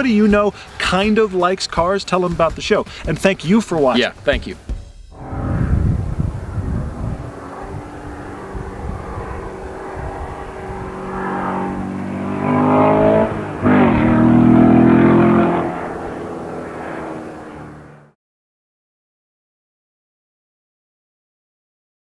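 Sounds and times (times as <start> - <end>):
sports car engine accelerating: 5.2 - 18.2.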